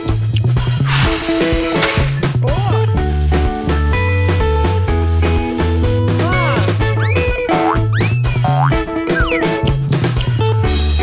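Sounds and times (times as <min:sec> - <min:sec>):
cartoon music with bouncy bass: 0:06.1 - 0:10.5.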